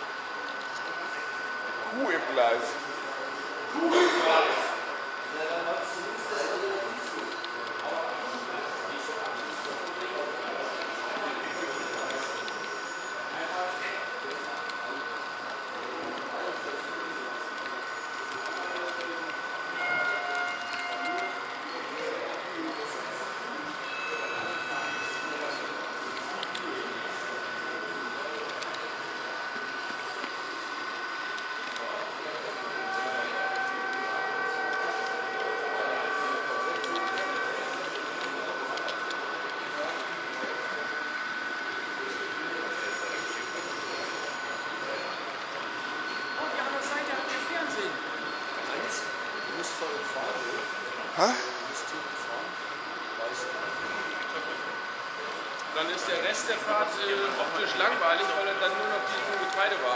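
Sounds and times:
model train whining on track: 0.0 - 59.9
murmur of voices: 0.0 - 59.9.

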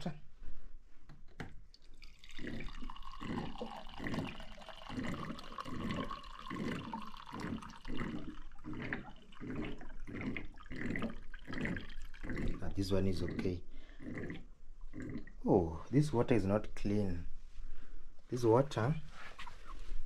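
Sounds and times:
water pouring and splashing: 1.8 - 12.8.

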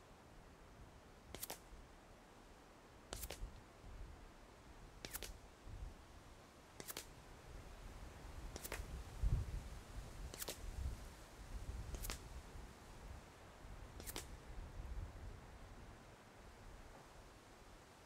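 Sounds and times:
wind rumble on microphone: 7.5 - 16.0.

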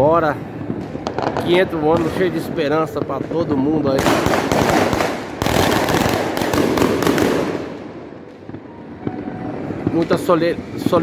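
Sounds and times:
fireworks bangs and crackles: 0.0 - 11.0
scattered firework pops: 0.6 - 2.2, 2.9 - 8.7.

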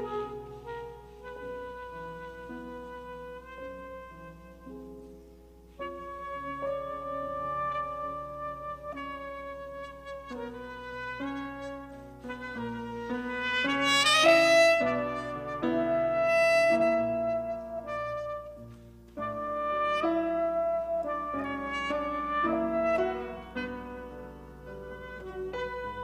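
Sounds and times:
piano accompaniment: 0.0 - 26.0
saxophone jazz melody: 0.0 - 26.0.

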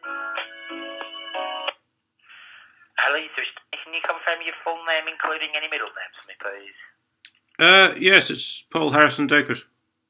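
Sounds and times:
person talking over telephone: 3.0 - 6.9.

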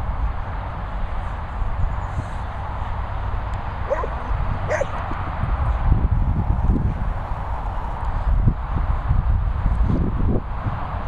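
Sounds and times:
dog yipping: 3.9 - 5.0.

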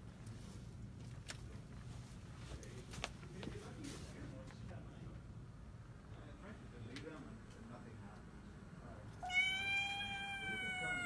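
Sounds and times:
recorded cat meow: 9.2 - 11.0.

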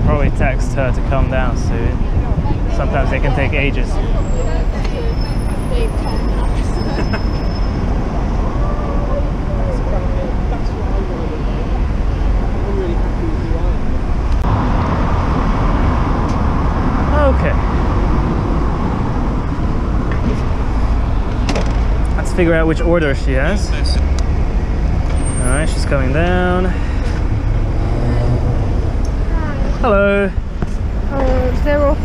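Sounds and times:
passers-by talking: 0.0 - 14.1, 25.2 - 32.0
city street traffic: 0.0 - 32.0.

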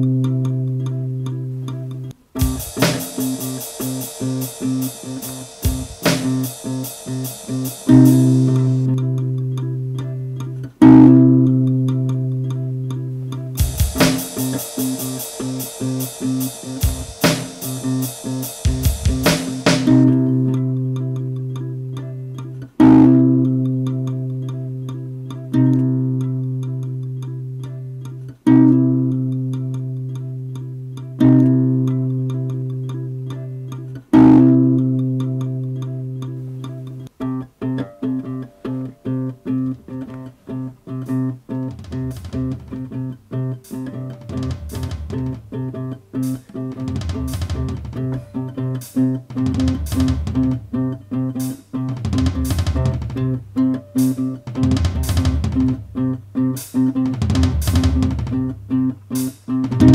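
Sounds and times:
bass notes: 0.0 - 37.2, 38.0 - 51.3, 51.9 - 56.3, 59.6 - 59.9
fast picked guitar rhythm: 0.0 - 59.9
guitar chords ringing: 0.0 - 59.9.

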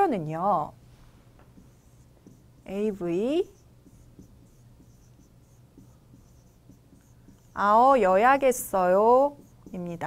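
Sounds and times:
marker scratching on a board: 1.4 - 10.0.

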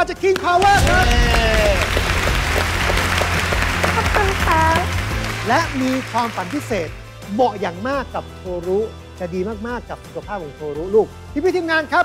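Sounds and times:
background music with low bass: 0.0 - 12.0
studio audience applauding: 0.3 - 7.4.

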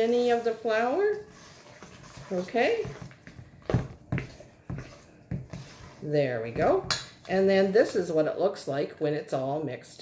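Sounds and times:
spoon stirring thick batter: 0.0 - 8.3.

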